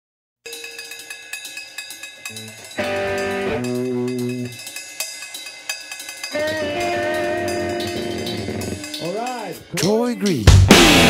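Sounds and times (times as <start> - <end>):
fast metallic cymbal ticking: 0.5 - 11.0.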